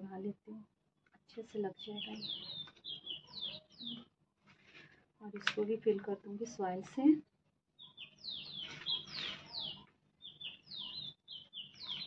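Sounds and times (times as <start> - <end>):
small bird chirping: 1.4 - 4.2, 7.7 - 12.0.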